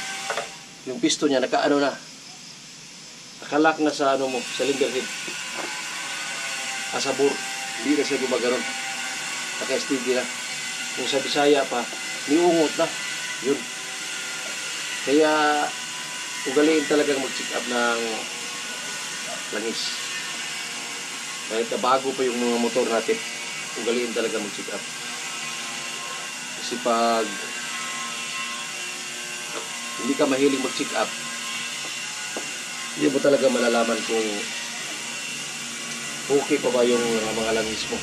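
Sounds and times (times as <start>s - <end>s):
steady background hiss: 0.0s - 8.6s.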